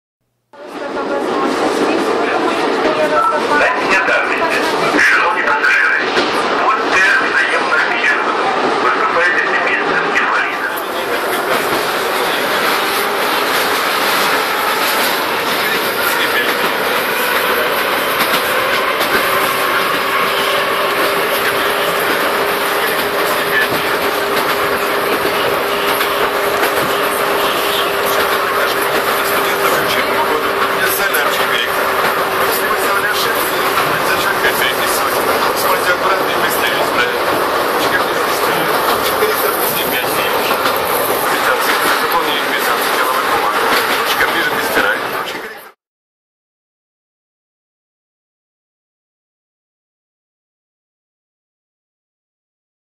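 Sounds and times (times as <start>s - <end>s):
metro train rolling noise: 0.6s - 45.8s
steady train whine: 0.6s - 45.8s.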